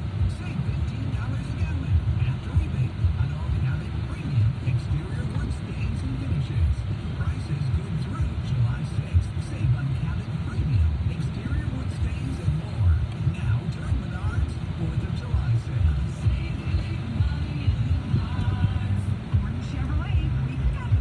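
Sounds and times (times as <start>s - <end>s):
car cabin rumble: 0.0s - 21.0s
car radio talk and music: 0.0s - 21.0s.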